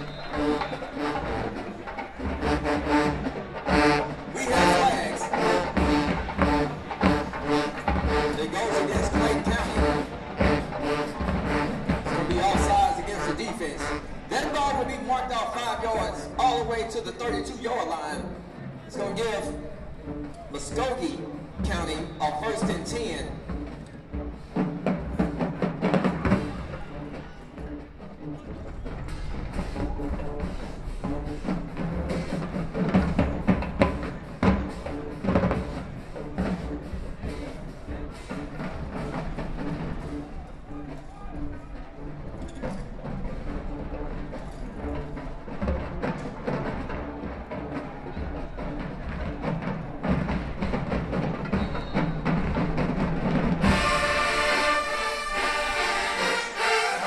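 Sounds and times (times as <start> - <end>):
brass chords: 0.0 - 57.0
drumline cadence: 0.0 - 57.0.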